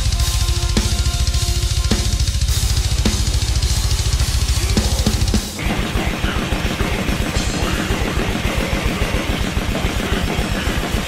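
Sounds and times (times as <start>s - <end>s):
cymbals: 0.0s - 11.0s
double bass kick drum: 0.0s - 11.0s
heavy metal music: 0.0s - 11.0s.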